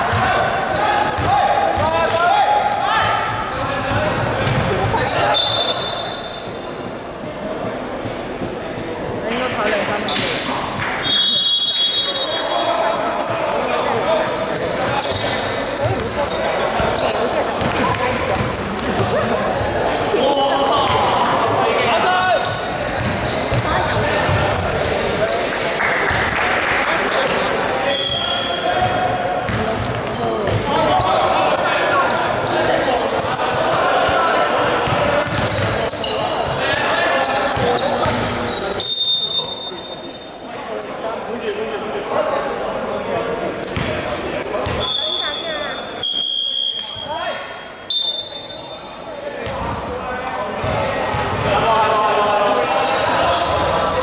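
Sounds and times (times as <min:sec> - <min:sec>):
players calling out: 0:00.0 - 0:06.8
sneakers squeaking: 0:00.0 - 0:41.3, 0:42.0 - 0:54.0
basketball bouncing on hardwood: 0:04.4 - 0:04.7.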